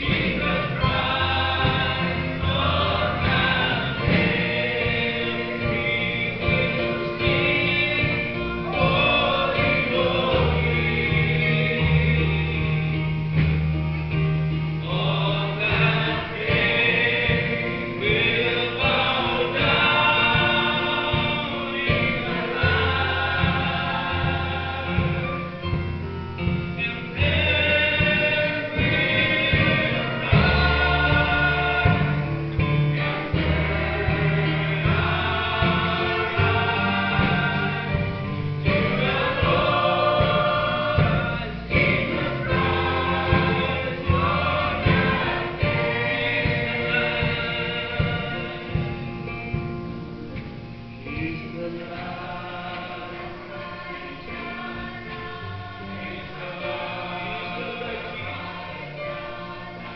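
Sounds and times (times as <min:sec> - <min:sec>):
man singing into microphone: 0:00.0 - 0:13.1, 0:14.8 - 0:25.5, 0:26.8 - 0:32.3
choir singing gospel song: 0:00.0 - 0:59.9
guitar accompaniment: 0:00.0 - 0:59.9.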